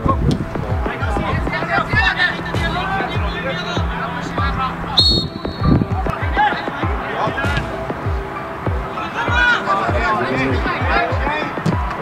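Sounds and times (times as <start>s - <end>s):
song with bass-drum beat: 0.0s - 12.0s.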